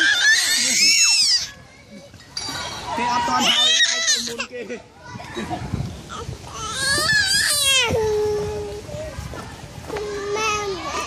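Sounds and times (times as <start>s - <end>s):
children laughing: 0.0s - 9.2s
children calling and chattering: 0.0s - 11.0s.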